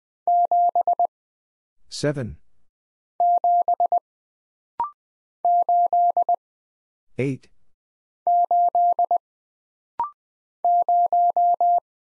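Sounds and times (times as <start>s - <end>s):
morse code beeps: 0.3s - 1.1s, 3.2s - 4.0s, 8.3s - 9.2s, 10.7s - 11.8s.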